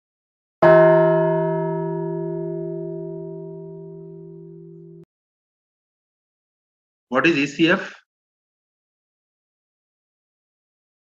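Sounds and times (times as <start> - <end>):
deep bell chime ringing: 0.6 - 5.1.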